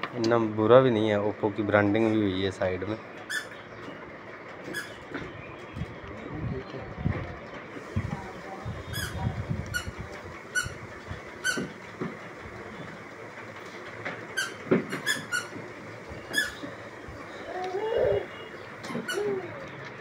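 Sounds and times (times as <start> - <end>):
high squeaky chirps: 3.2 - 3.8, 4.6 - 5.1, 8.9 - 10.8, 11.4 - 11.7, 14.3 - 15.6, 16.2 - 16.8, 17.4 - 19.6.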